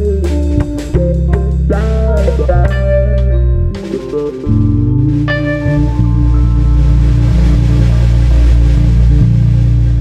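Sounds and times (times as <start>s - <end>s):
blues band playing: 0.0s - 10.0s
electric guitar: 0.0s - 10.0s
heavy bass riff: 0.0s - 10.0s.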